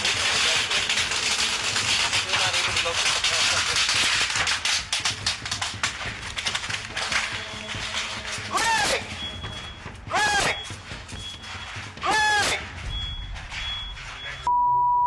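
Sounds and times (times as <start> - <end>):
fire crackling and popping: 0.0 - 14.4
person shouting: 8.5 - 9.1, 10.1 - 10.6, 12.0 - 12.7.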